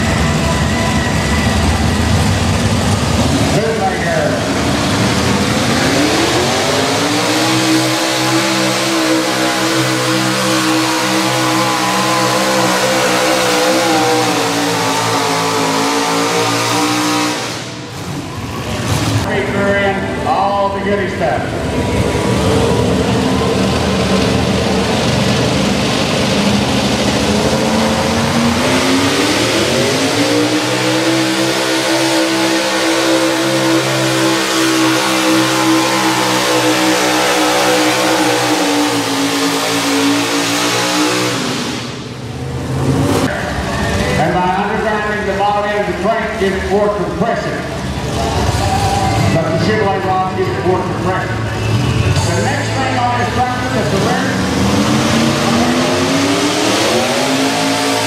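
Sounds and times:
tractor engine at full throttle: 0.0 - 58.0.

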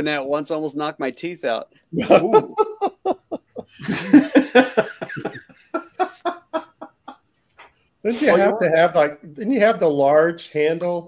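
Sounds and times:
men laughing hard: 2.0 - 7.2.

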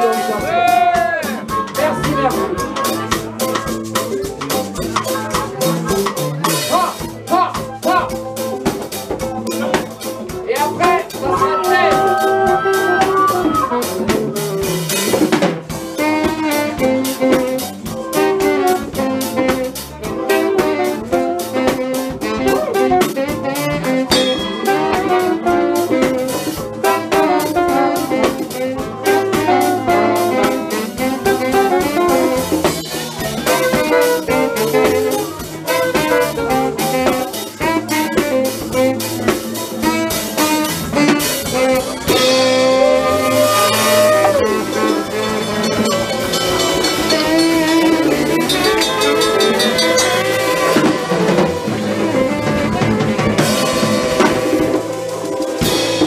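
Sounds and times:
drum kit: 0.0 - 56.0
electric bass: 0.0 - 56.0
saxophone melody: 0.0 - 56.0.

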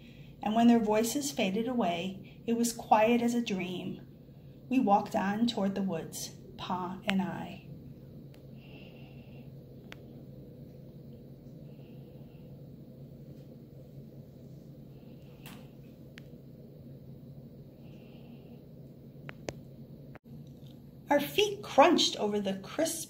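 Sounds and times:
low hum: 0.0 - 22.8.

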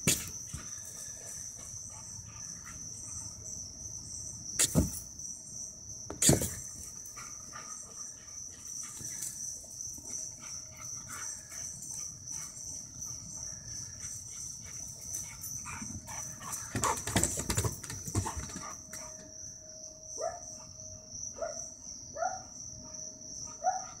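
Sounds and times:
insects chirring: 0.0 - 24.0
knocks and thuds: 4.6 - 5.0, 6.1 - 6.8
dog barking: 20.2 - 20.5, 21.4 - 21.6, 22.2 - 22.5, 23.6 - 24.0.

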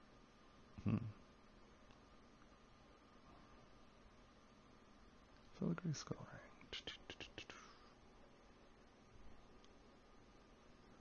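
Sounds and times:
person whispering: 5.6 - 8.0.

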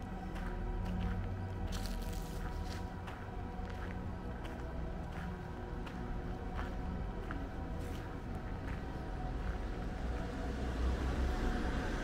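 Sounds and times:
street noise: 0.0 - 12.0
car passing: 6.4 - 12.0.

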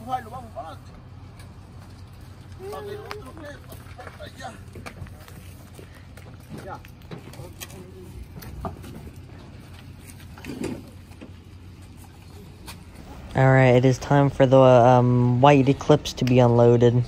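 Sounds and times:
steady low rumble: 3.4 - 17.0.

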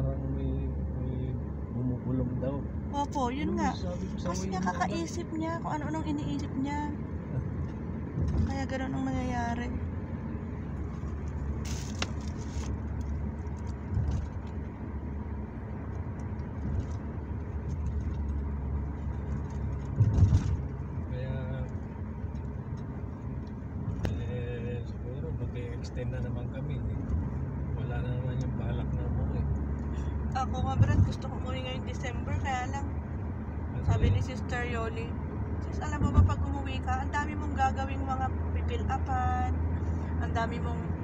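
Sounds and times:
car engine and tyres rumbling: 0.0 - 41.0
car bumps: 19.8 - 20.8.

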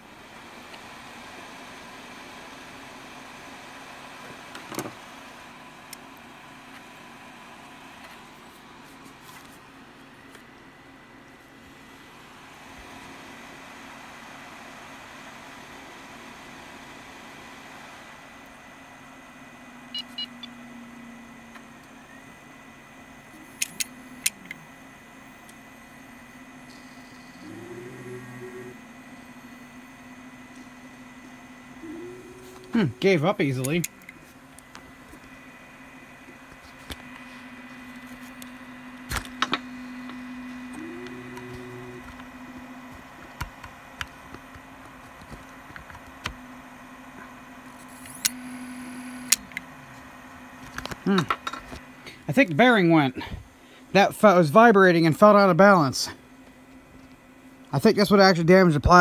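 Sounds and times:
hard drive spindle hum and whine: 0.0 - 59.0.

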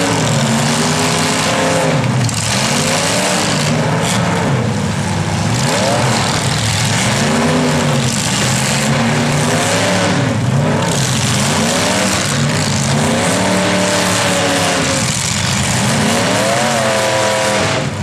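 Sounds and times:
car engines revving hard: 0.0 - 18.0.

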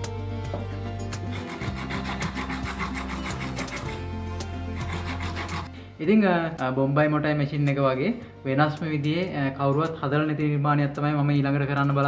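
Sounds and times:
wire brush scrubbing coconut shell: 1.1 - 5.7.

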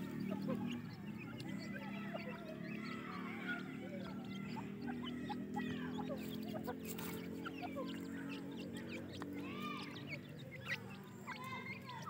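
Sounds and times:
chicks peeping: 0.0 - 12.0.

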